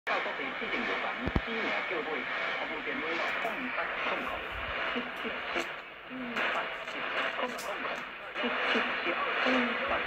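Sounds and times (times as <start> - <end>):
man talking on radio: 0.1 - 10.0
static hiss: 0.1 - 10.0.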